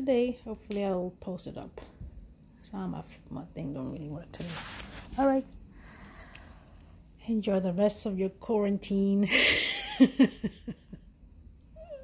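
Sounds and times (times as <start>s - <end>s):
woman laughing: 9.2s - 11.1s.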